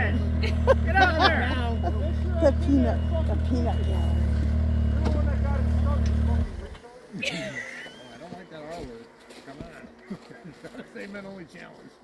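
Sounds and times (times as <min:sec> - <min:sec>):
distant men talking: 0:00.0 - 0:12.0.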